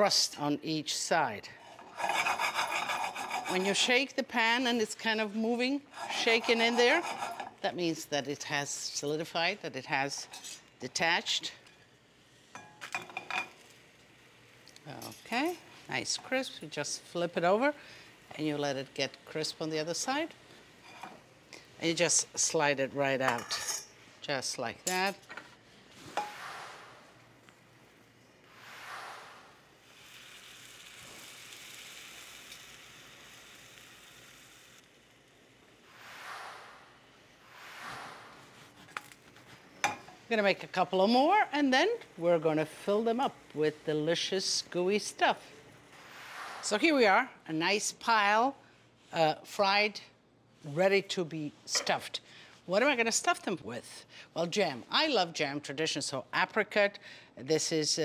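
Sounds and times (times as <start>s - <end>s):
batter sizzling in a pan: 1.6s - 23.2s, 27.8s - 40.0s.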